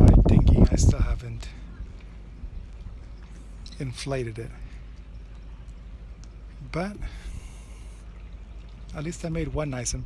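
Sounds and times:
steady low rumble: 0.0 - 10.0
man speaking: 3.7 - 4.6
man breathing in: 7.0 - 8.1.

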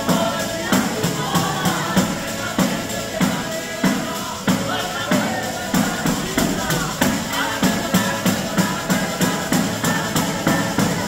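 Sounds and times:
accordion: 0.0 - 11.0
fast tambourine beat: 0.0 - 11.0.

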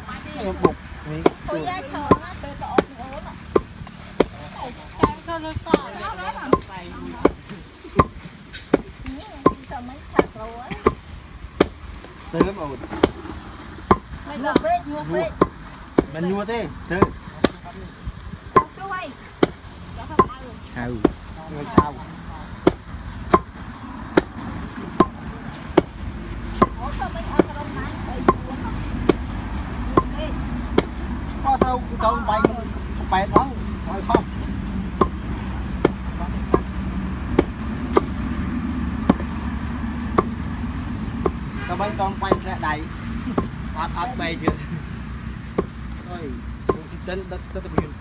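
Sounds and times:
people talking: 0.0 - 3.4, 4.3 - 7.6, 9.0 - 11.0, 14.2 - 15.4, 20.0 - 22.5, 26.8 - 29.1, 31.4 - 34.5
wooden pestle pounding in mortar: 0.4 - 4.4, 5.0 - 11.0, 11.6 - 16.3, 16.9 - 17.6, 19.4 - 20.4, 21.0 - 27.6, 28.2 - 38.2, 39.0 - 39.4, 40.0 - 40.4, 41.2 - 41.5, 42.1 - 42.6, 43.3 - 43.6, 45.5 - 45.8, 46.6 - 47.0, 47.6 - 48.0.

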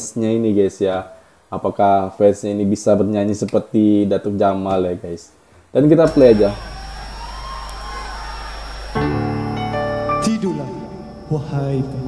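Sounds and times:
faint low hum: 5.8 - 12.0.

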